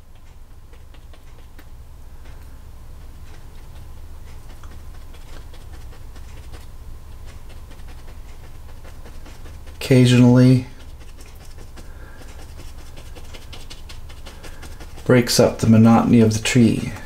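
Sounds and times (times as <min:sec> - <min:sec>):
low background hum: 0:00.0 - 0:17.0
paintbrush tapping and scratching canvas: 0:00.0 - 0:17.0.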